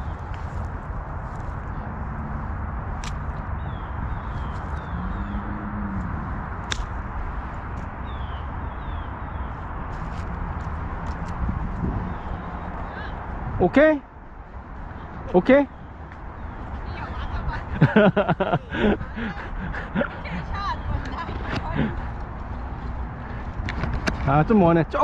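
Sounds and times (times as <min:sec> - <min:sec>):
wind noise on microphone: 0:00.0 - 0:24.5
footsteps on grass: 0:09.6 - 0:12.0.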